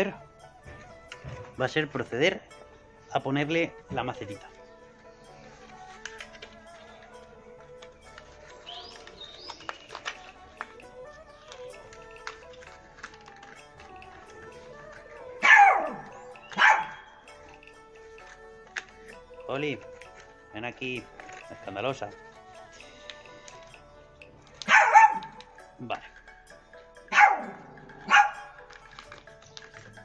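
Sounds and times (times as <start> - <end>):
quiet background music: 0.0 - 30.0
plastic pot and wire clicking: 5.9 - 15.1, 17.4 - 26.3, 27.4 - 30.0
dog barking: 15.4 - 17.1, 24.6 - 25.4, 27.1 - 28.5.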